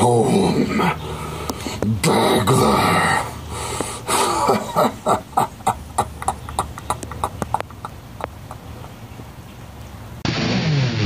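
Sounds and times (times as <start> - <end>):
man making wordless vocal sounds: 0.0 - 5.6.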